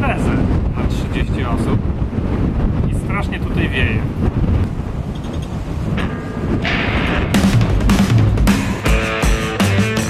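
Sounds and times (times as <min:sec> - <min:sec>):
wind buffeting microphone: 0:00.0 - 0:09.2
beats: 0:06.0 - 0:10.0
music: 0:06.0 - 0:10.0.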